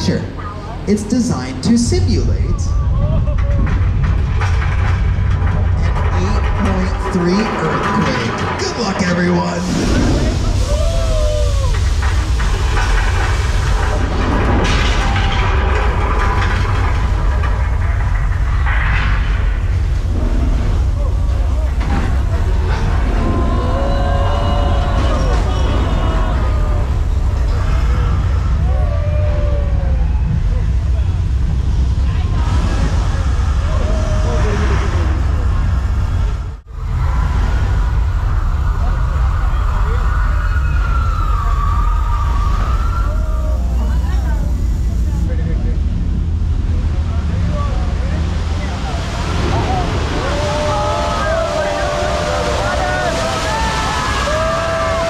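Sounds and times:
heavy low rumble: 0.0 - 55.0
crashing and clattering: 2.7 - 28.9
rising and falling wailing tones: 32.2 - 45.0.

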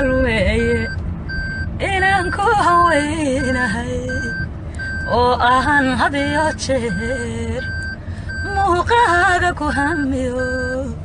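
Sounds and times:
short high beeps: 0.8 - 1.7, 10.4 - 10.9.

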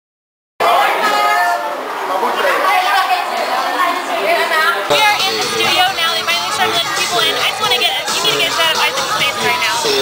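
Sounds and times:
overlapping chatter: 0.6 - 10.0.

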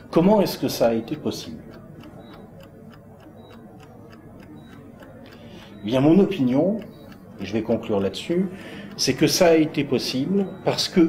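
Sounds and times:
chess clock ticking: 0.0 - 11.0.

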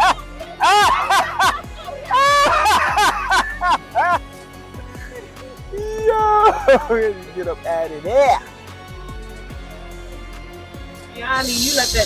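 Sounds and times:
high squealing laugh: 0.0 - 4.2
people laughing hard: 0.0 - 7.2.

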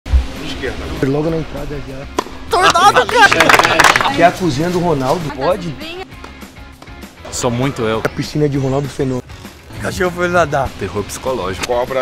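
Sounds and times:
tennis racket striking ball: 2.1 - 2.4
people clapping: 2.6 - 4.4.

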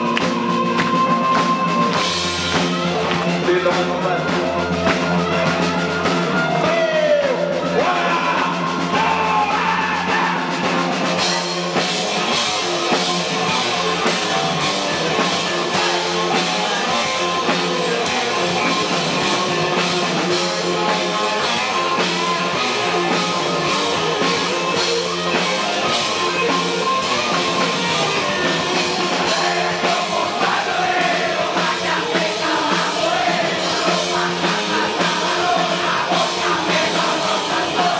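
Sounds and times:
drums and cymbals: 0.0 - 37.9
live rock band playing: 0.0 - 37.9
person singing: 6.5 - 37.9.

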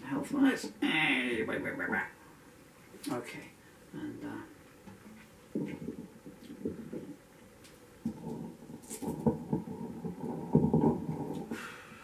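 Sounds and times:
microphone handling bumps: 5.1 - 7.2, 8.0 - 11.6.

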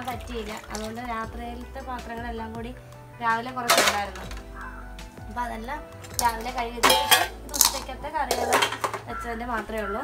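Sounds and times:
background music: 0.0 - 10.0
metal dishes clattering: 3.5 - 4.5, 6.0 - 9.7.

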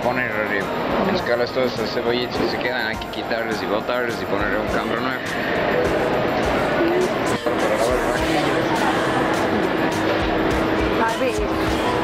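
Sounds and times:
background music: 0.0 - 12.0
steady mechanical hum: 0.0 - 12.0.

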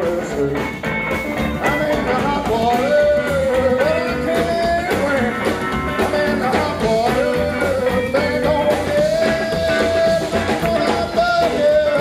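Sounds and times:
rockabilly band playing: 0.0 - 12.0.

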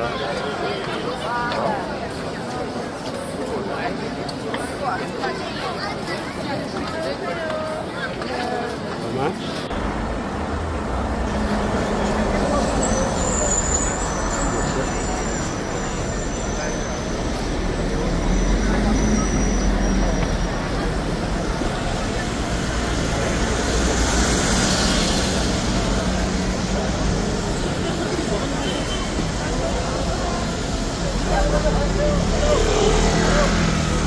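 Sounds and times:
low street rumble: 0.0 - 34.0.

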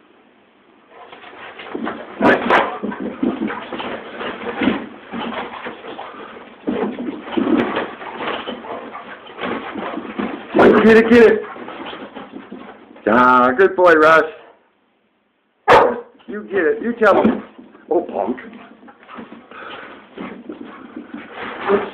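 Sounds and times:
dogs scuffling: 0.9 - 13.8, 15.7 - 21.9.

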